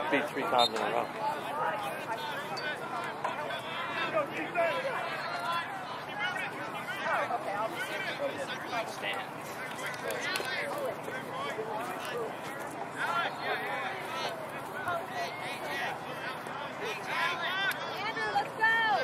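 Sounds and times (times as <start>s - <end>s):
spectators talking: 0.0s - 19.0s.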